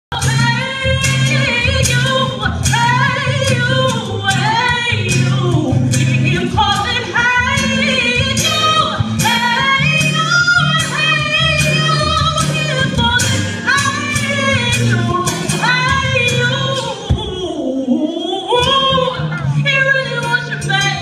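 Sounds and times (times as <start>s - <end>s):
person singing with vibrato: 0.1s - 21.0s.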